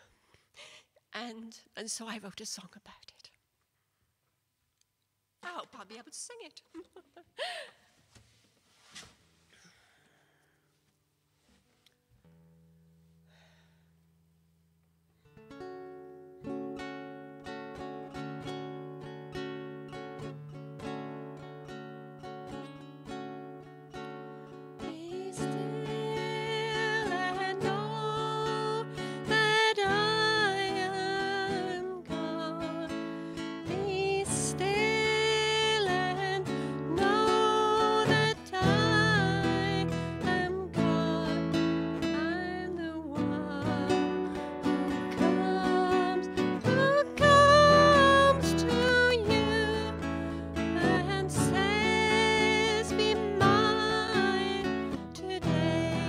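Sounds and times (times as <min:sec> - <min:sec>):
plucked acoustic guitar: 0:15.2 - 0:56.0
woman singing slow song: 0:24.8 - 0:56.0.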